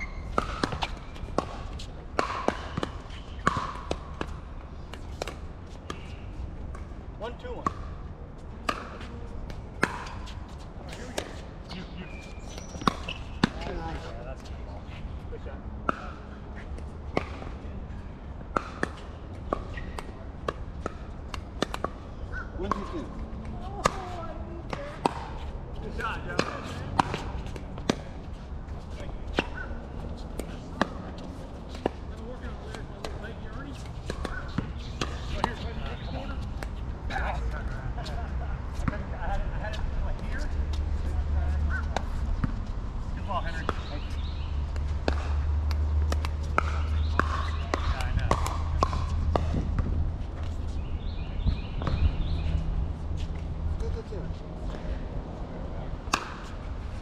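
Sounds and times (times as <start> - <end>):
ball bouncing on hard court: 0.0 - 6.9, 7.5 - 8.0, 8.6 - 14.1, 16.8 - 17.5, 18.5 - 28.3, 29.0 - 37.7, 39.7 - 52.6.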